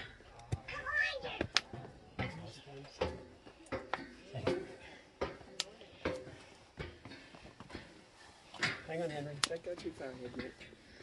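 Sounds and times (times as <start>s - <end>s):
footsteps clanking on metal stairs: 1.7s - 11.0s.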